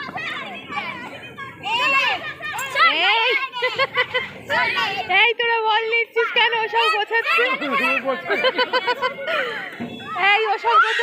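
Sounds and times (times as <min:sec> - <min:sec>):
child's high-pitched shout: 0:00.0 - 0:03.7, 0:06.2 - 0:08.1, 0:10.0 - 0:11.0
children calling and chattering: 0:00.0 - 0:11.0.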